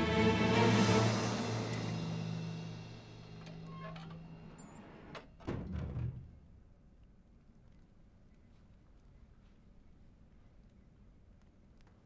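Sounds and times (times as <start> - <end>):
background music sustained tones: 0.0 - 5.4
heavy wooden door opening: 3.4 - 6.4.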